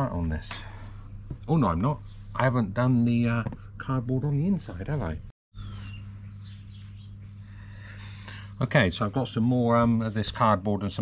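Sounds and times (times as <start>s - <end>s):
steady low hum: 0.0s - 11.0s
faint bird chirps: 5.5s - 8.4s.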